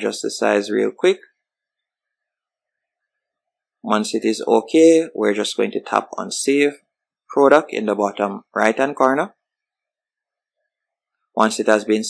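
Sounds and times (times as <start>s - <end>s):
man speaking: 0.0s - 1.3s, 3.8s - 9.4s, 11.4s - 12.0s.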